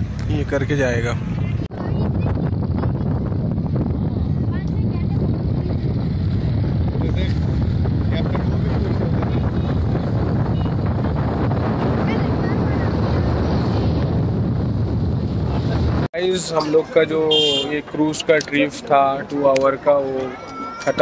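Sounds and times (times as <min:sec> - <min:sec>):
steady low rumble: 0:00.0 - 0:16.1
wind buffeting microphone: 0:00.0 - 0:16.1
faint voices: 0:16.5 - 0:21.0.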